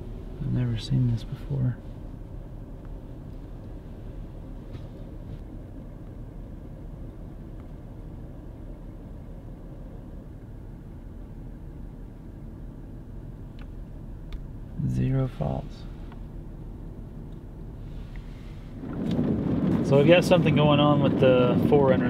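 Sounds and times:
car cabin low rumble: 0.0s - 22.0s.

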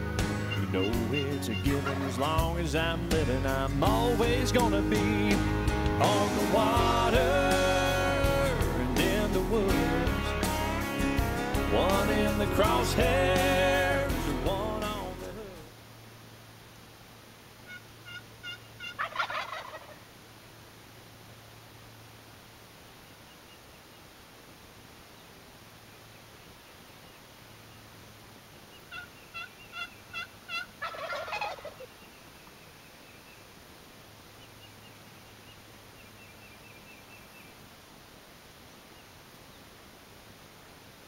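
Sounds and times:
distant bird calling: 0.0s - 2.4s, 17.6s - 20.0s, 28.7s - 33.5s
turkey gobbling: 0.3s - 2.4s, 17.6s - 20.0s, 28.9s - 32.1s
turkey yelps: 0.4s - 2.2s, 17.7s - 20.0s, 28.9s - 31.9s.

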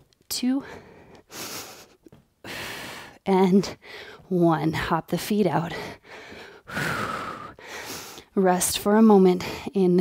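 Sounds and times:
woman breathing hard: 0.6s - 4.3s, 5.7s - 8.3s.

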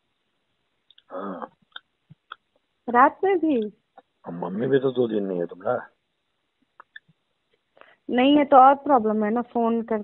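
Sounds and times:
person talking on phone line: 4.3s - 5.8s.

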